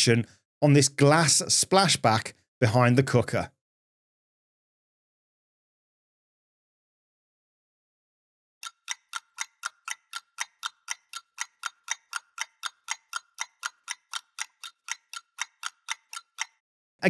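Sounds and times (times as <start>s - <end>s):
clock ticking: 8.6s - 16.6s.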